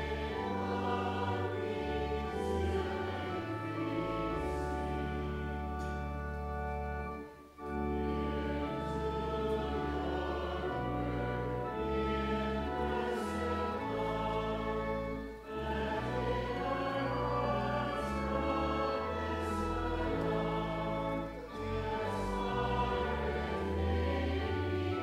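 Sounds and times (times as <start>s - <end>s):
choir singing held chords: 0.0s - 6.0s, 7.2s - 25.0s
church organ: 0.0s - 25.0s.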